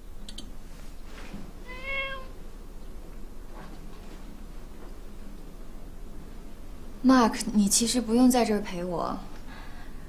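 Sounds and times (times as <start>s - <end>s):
cat meowing: 1.6s - 2.4s.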